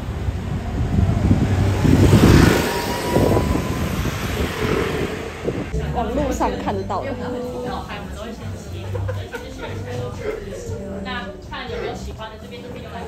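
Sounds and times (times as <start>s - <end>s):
vehicle passing by: 0.0s - 6.2s.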